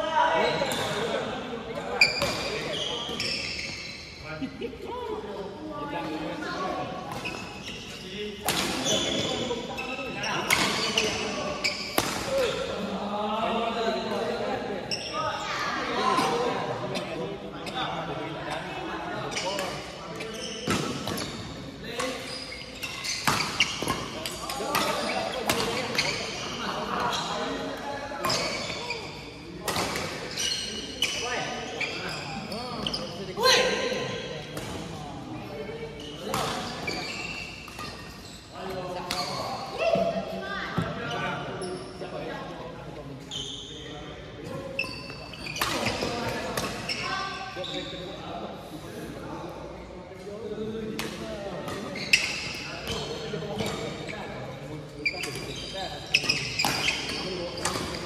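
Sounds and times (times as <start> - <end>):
rackets hitting shuttlecock: 11.8 - 12.5.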